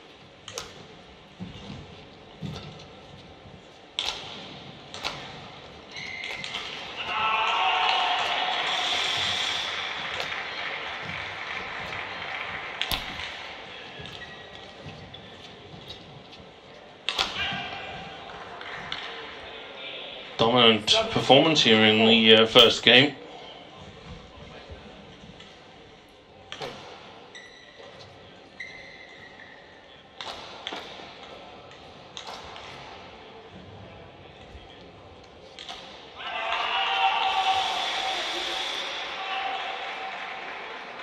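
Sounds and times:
rackets hitting shuttlecock: 0:00.4 - 0:01.0, 0:03.9 - 0:16.0, 0:17.0 - 0:19.4, 0:26.5 - 0:27.2, 0:30.2 - 0:33.1, 0:35.4 - 0:36.7.

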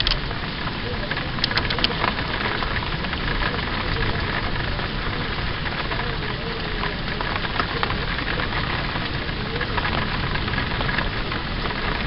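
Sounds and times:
sharp ticks: 0:00.0 - 0:00.3, 0:01.4 - 0:02.8
rain against a window: 0:00.0 - 0:12.0.

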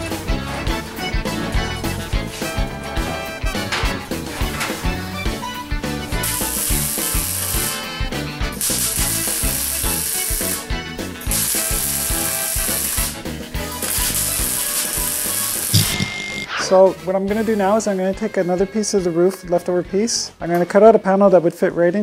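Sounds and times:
background music with a beat: 0:00.0 - 0:18.4
arc welder crackling: 0:06.1 - 0:08.0, 0:08.6 - 0:16.2.

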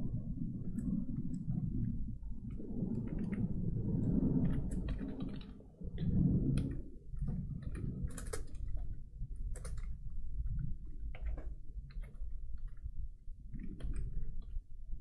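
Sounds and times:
low rumble: 0:00.0 - 0:09.5.

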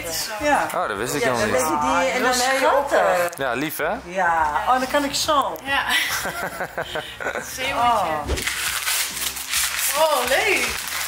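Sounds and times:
wrapping paper crinkling: 0:08.3 - 0:11.0.

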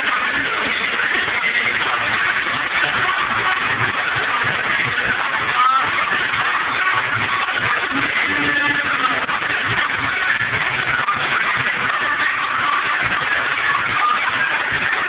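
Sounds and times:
crowd noise: 0:00.0 - 0:15.0
loud muffled club music: 0:00.0 - 0:15.0.

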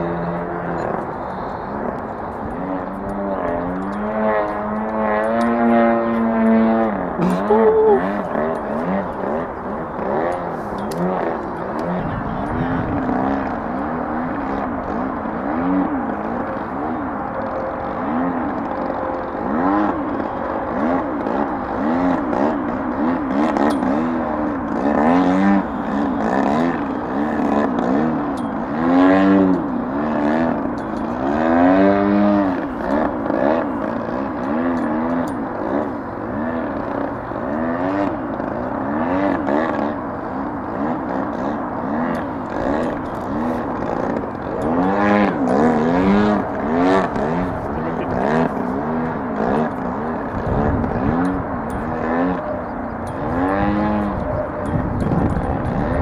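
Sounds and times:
model plane engine droning: 0:00.0 - 0:56.0.

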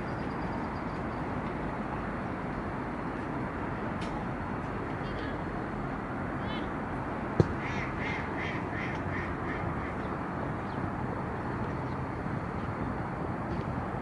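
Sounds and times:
steady background noise: 0:00.0 - 0:14.0.

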